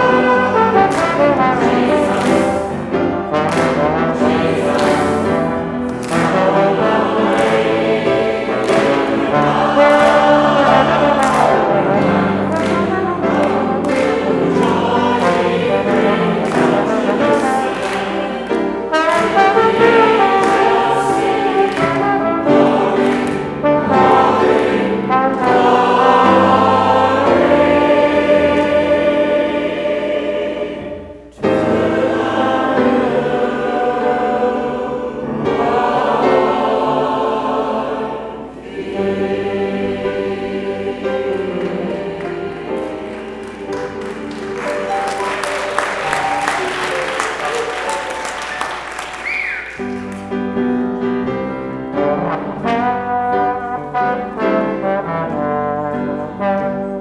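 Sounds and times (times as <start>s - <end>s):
trombone: 0.0s - 29.9s, 51.8s - 57.0s
congregation singing a hymn: 0.0s - 57.0s
grand piano: 0.0s - 57.0s.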